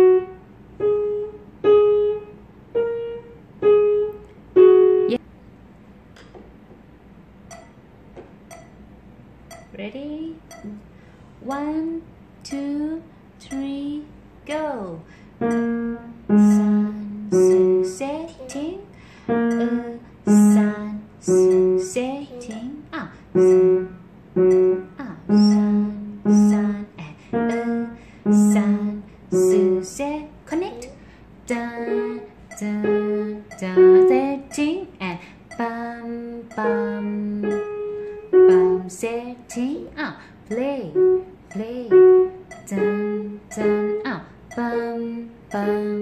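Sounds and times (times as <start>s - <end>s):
piano single notes: 0.0s - 5.2s, 15.4s - 22.7s, 23.4s - 30.0s, 31.8s - 46.0s
person speaking: 19.5s - 23.7s.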